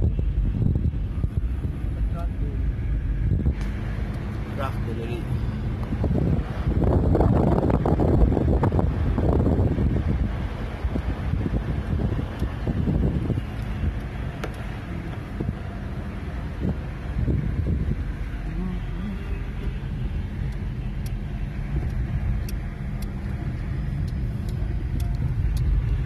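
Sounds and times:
car road and engine rumble: 0.0 - 26.0.

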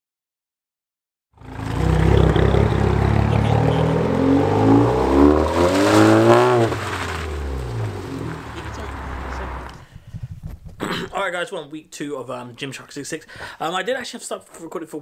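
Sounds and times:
car engine revving: 1.4 - 9.8.

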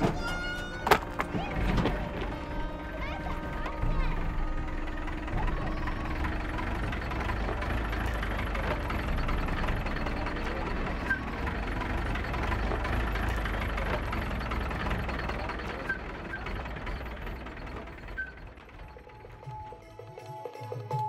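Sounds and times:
truck engine running: 0.0 - 20.1.

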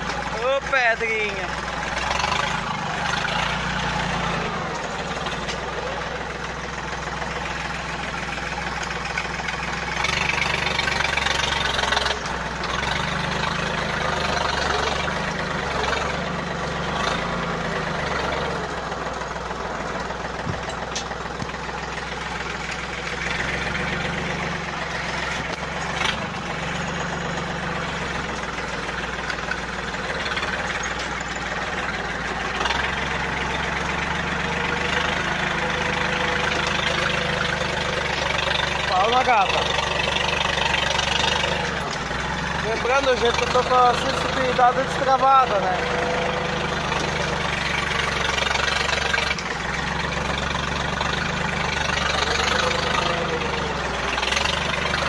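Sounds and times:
tractor diesel engine running: 0.0 - 55.0.

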